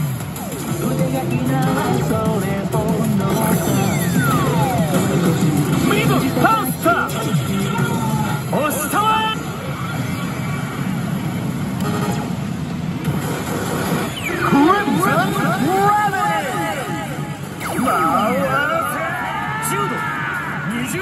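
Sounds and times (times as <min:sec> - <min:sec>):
slot machine music: 0:00.0 - 0:09.6, 0:13.2 - 0:19.0
swooping sound effects: 0:03.4 - 0:10.9.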